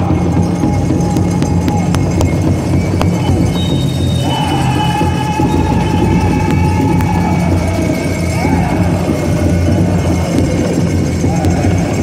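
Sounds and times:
steady drum beat: 0.0 - 12.0
high-pitched voices singing: 4.1 - 12.0.

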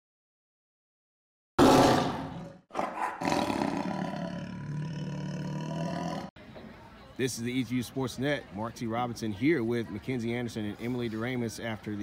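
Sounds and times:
tiger roar: 1.6 - 6.3.

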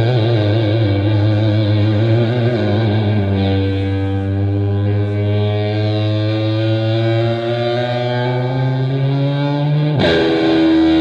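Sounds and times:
distorted electric guitar note: 0.0 - 11.0.

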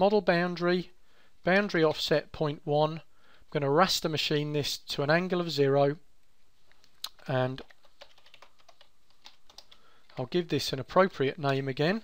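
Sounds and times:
computer keyboard typing: 7.1 - 10.3.

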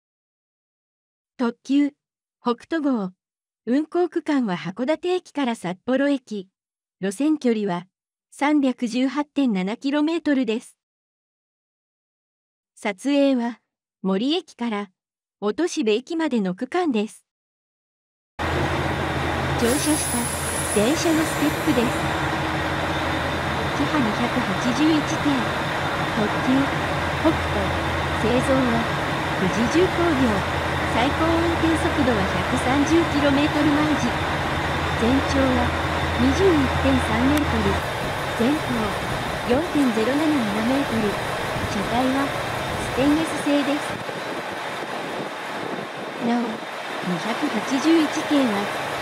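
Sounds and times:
diesel train engine idling: 18.4 - 43.6.

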